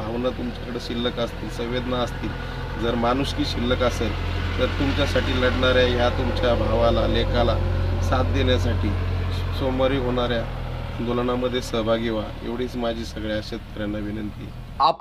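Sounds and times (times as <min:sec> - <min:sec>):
low engine rumble: 0:00.0 - 0:15.0
man talking: 0:00.0 - 0:15.0.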